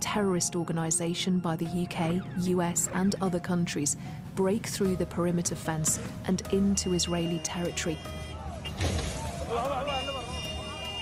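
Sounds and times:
people shouting: 8.2 - 11.0.

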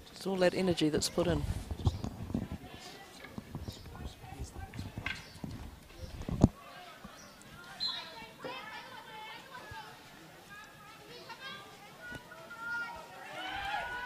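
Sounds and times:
players calling and shouting: 2.6 - 14.0.

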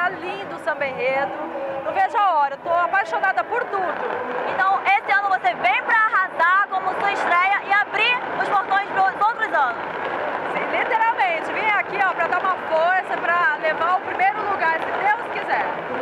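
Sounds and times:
woman talking into microphone: 0.0 - 1.3, 1.9 - 9.8, 10.5 - 15.7
crowd hubbub: 0.0 - 16.0.

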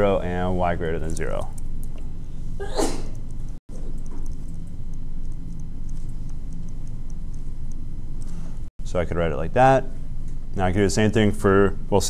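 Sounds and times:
low room hum: 0.0 - 12.0
sneeze: 2.6 - 3.1.

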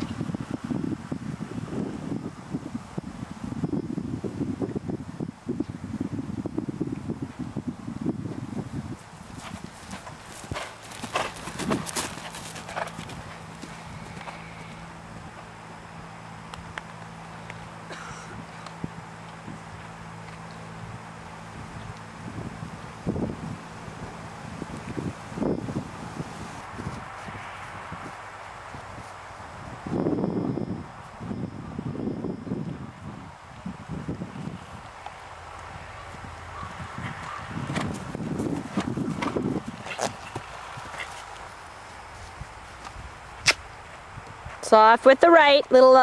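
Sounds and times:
hooves thudding on turf: 8.3 - 15.5, 34.5 - 44.7.

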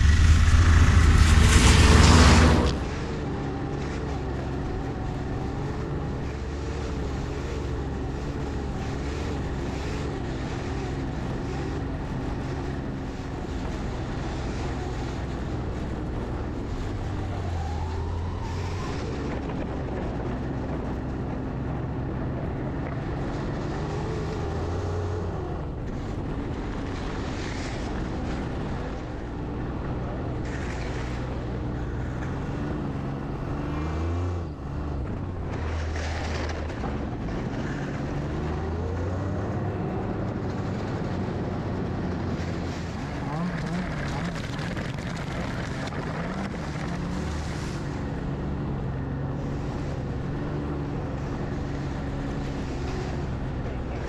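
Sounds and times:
vehicle engine running: 0.0 - 54.0
wind and road noise: 0.0 - 54.0.

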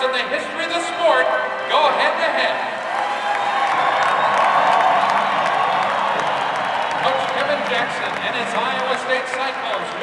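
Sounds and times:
crowd cheering and applauding: 2.6 - 10.0.

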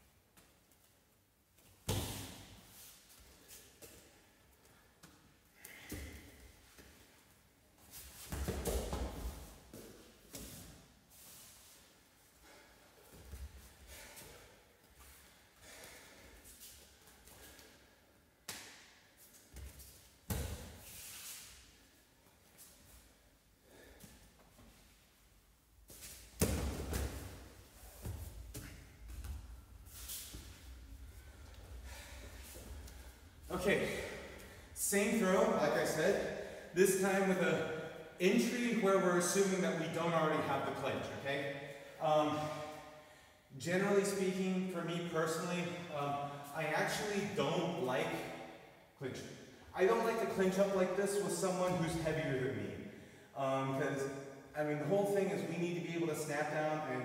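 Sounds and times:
bare feet shuffling on mat: 25.8 - 34.6.

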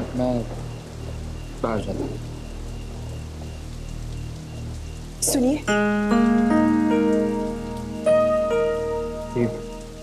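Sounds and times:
slow sustained music notes: 0.0 - 10.0.

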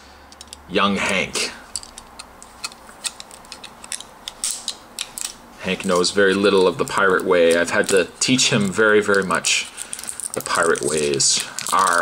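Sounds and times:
knife cutting plastic wrap: 5.8 - 12.0.

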